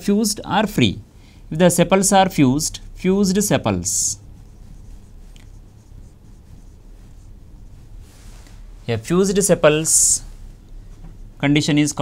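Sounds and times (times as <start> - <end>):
marker writing on whiteboard: 3.0 - 8.0, 10.8 - 12.0.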